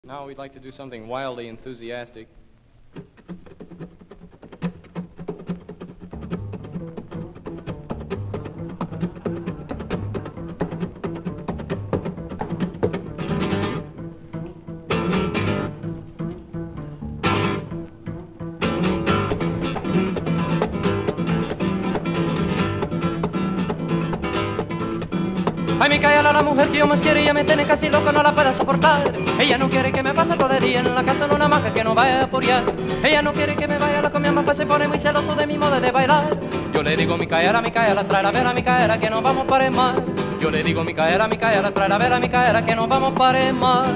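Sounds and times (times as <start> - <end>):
acoustic guitar strumming: 2.9 - 43.9
person singing: 25.8 - 43.9.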